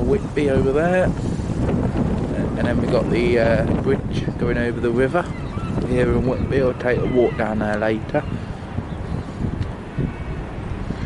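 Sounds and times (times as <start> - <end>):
faint outdoor town background: 0.0 - 11.0
wind buffeting microphone: 0.0 - 11.0.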